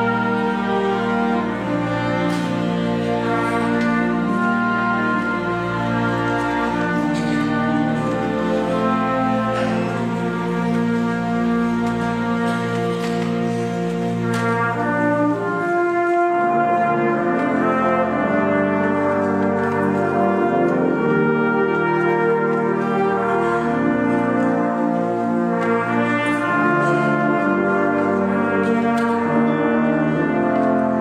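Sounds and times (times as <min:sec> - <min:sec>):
brass ensemble playing chords: 0:00.0 - 0:31.0.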